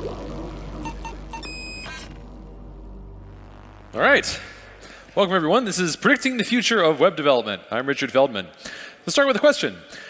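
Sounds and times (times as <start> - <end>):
electronic intro music: 0.0 - 6.2
short synthetic beeps: 0.8 - 2.1.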